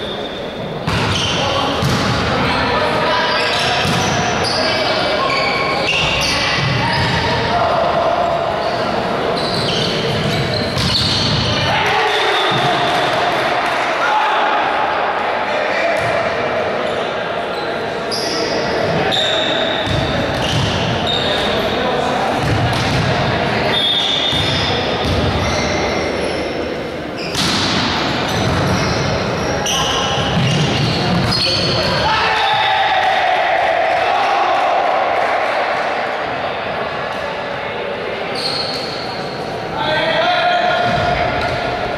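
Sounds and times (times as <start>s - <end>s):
shouting voices in echoing hall: 0.0s - 41.9s
shoe squeaks on court: 3.2s - 7.3s, 8.6s - 11.5s, 23.7s - 26.6s, 27.2s - 27.6s, 28.3s - 31.9s, 38.3s - 39.4s
crowd long held shout: 32.0s - 36.2s.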